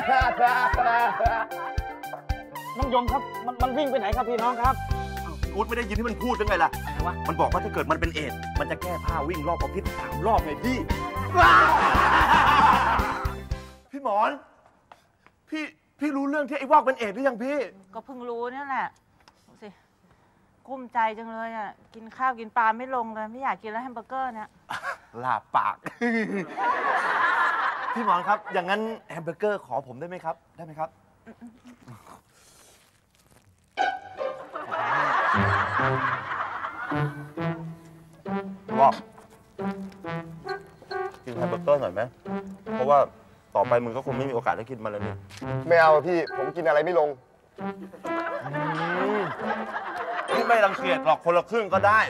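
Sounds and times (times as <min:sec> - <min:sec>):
hearty laughter: 0:00.0 - 0:01.8, 0:11.4 - 0:13.2, 0:25.8 - 0:28.6, 0:34.3 - 0:37.0, 0:47.8 - 0:50.9
background music with beat: 0:00.0 - 0:13.9, 0:33.8 - 0:47.0, 0:47.6 - 0:51.2.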